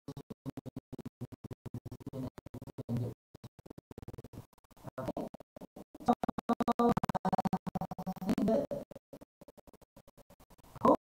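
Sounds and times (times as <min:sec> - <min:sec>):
crackling microphone static: 0:00.0 - 0:11.0.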